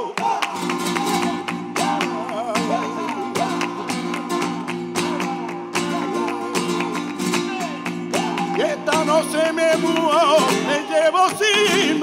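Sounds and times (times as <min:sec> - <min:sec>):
acoustic guitar: 0:00.0 - 0:12.0
rhythmic hand-clapping: 0:00.0 - 0:12.0.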